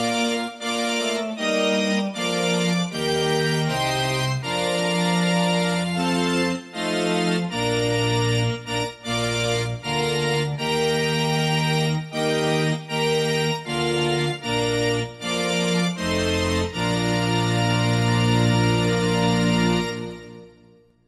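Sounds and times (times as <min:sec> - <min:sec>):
organ keyboard playing held chords: 0:00.0 - 0:21.0.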